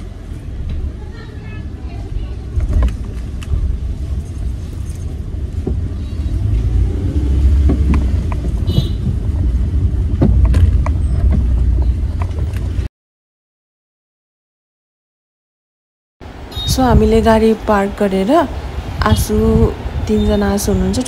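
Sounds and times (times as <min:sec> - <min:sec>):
car cabin rumble: 0:00.0 - 0:12.9
knocks and rattles: 0:02.5 - 0:06.1, 0:07.1 - 0:12.9.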